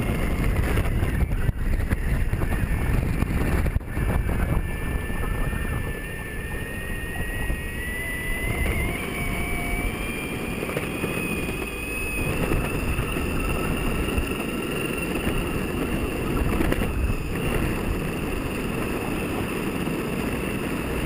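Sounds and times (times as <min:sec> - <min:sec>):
electric motor whine: 0:00.0 - 0:21.0
wheel rumble on tarmac: 0:00.0 - 0:21.0
wind on microphone: 0:00.0 - 0:21.0.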